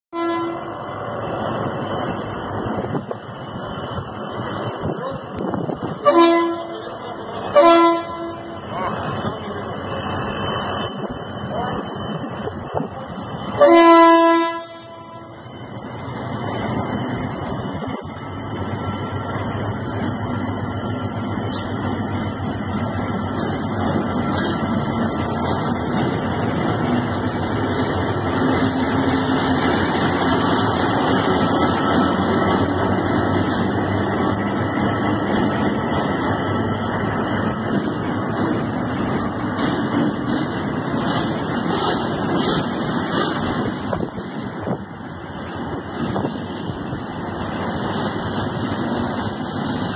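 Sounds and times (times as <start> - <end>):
locomotive horn: 0.1 - 0.8, 6.0 - 6.8, 7.5 - 8.6, 13.6 - 15.4
locomotive engine and running gear: 6.6 - 13.7.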